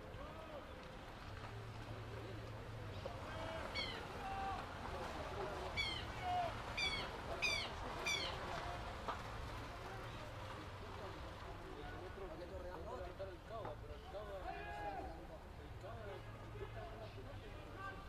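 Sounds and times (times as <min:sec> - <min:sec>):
distant shouting voices: 0:00.0 - 0:01.0, 0:02.7 - 0:09.0, 0:14.0 - 0:18.0.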